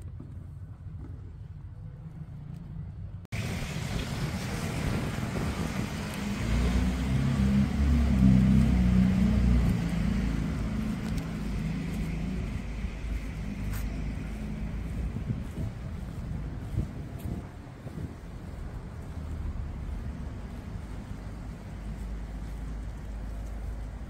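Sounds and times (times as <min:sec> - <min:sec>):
wind buffeting microphone: 0:03.3 - 0:24.0.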